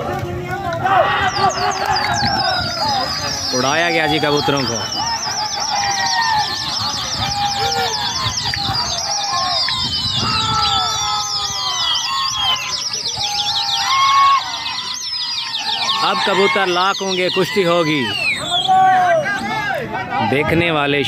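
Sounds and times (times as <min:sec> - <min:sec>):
men shouting calls: 0:00.0 - 0:12.6, 0:15.6 - 0:21.0
men whistling: 0:01.0 - 0:19.6.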